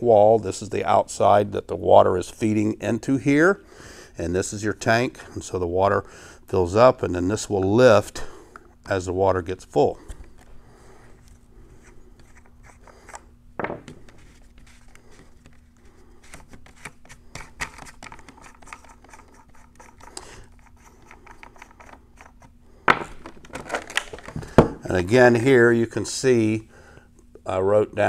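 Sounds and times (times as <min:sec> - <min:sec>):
faint steady hum: 0:00.0 - 0:28.0
plastic knocks: 0:13.6 - 0:14.0, 0:22.9 - 0:24.8
plastic parts scraping and clicking: 0:23.2 - 0:24.6.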